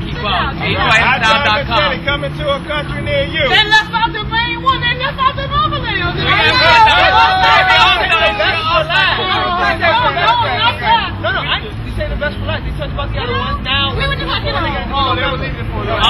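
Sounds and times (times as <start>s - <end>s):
people talking and laughing: 0.0s - 16.0s.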